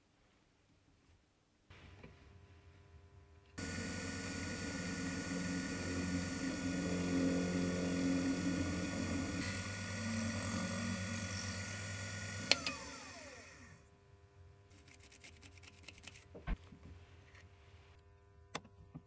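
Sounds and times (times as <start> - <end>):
drill cutting steel: 3.6 - 13.8
milling machine motor running: 3.6 - 13.8.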